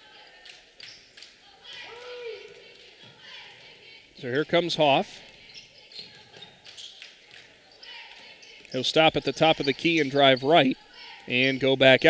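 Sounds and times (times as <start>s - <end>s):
faint crowd noise: 0.0s - 12.0s.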